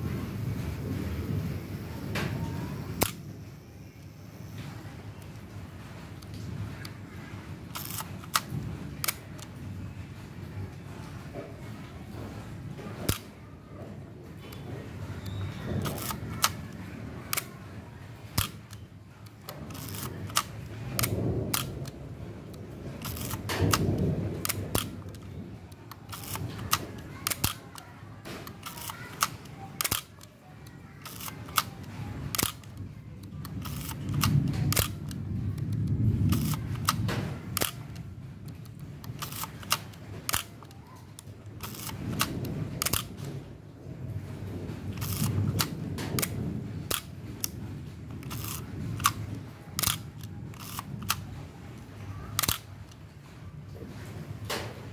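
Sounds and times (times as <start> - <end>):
camera lever winding: 7.7 - 9.5, 15.8 - 16.7, 17.3 - 17.6, 18.4 - 18.8, 19.6 - 22.0, 23.0 - 25.2, 25.9 - 43.3, 45.0 - 46.3, 46.9 - 47.6, 48.2 - 51.3, 52.3 - 53.0
camera shutter click-clacks: 7.7 - 9.5, 15.2 - 17.5, 18.3 - 18.8, 19.5 - 22.0, 23.0 - 43.3, 44.9 - 51.3, 52.3 - 53.0
handling rumble: 8.4 - 54.9.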